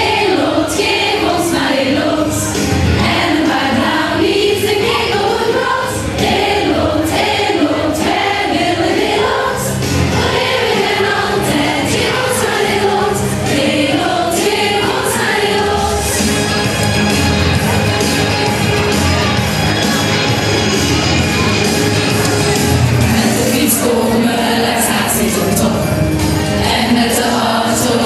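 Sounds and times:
choir singing in unison: 0:00.0 - 0:18.4, 0:23.0 - 0:28.0.

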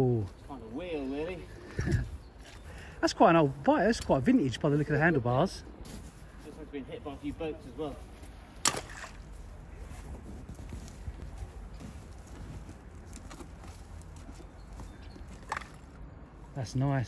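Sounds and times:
hook splashing into water: 0:08.6 - 0:09.2.

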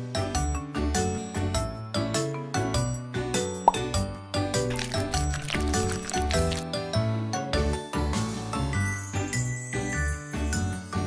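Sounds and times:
light children's music: 0:00.0 - 0:11.0
cartoon plop sound effect: 0:03.7 - 0:04.0.

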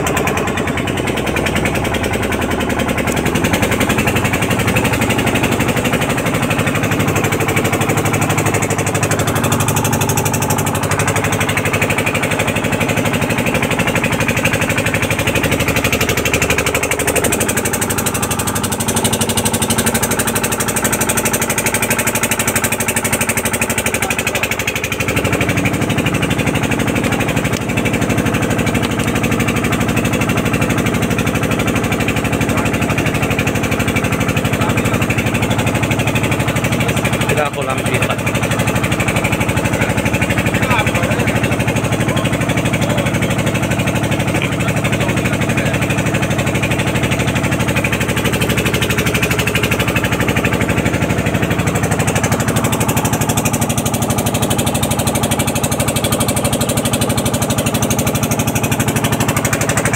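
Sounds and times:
boat motor running: 0:00.0 - 0:59.9.

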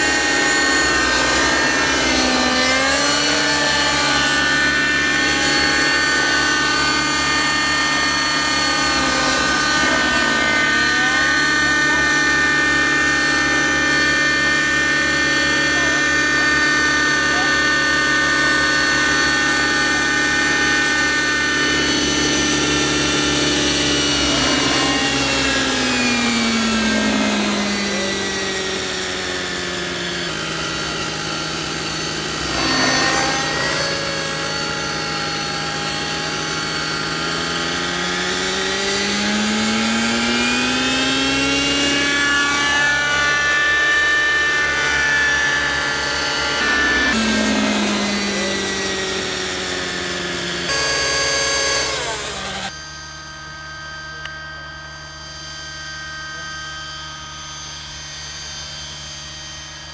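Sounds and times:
model helicopter rotor whine: 0:00.0 - 0:59.9.

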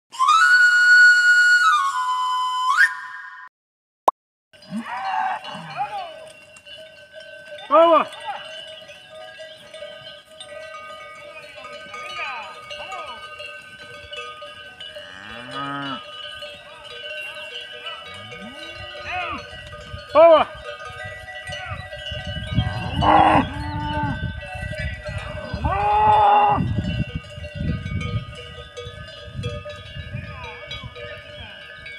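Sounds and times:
cattle bells clanking: 0:04.6 - 0:31.9
cow mooing: 0:15.0 - 0:16.0, 0:18.0 - 0:19.4, 0:22.6 - 0:24.2, 0:25.4 - 0:26.7.

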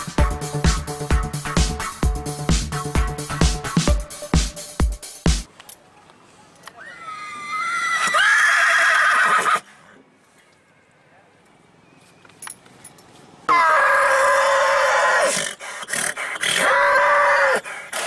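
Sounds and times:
horse whinnying: 0:06.8 - 0:09.7.

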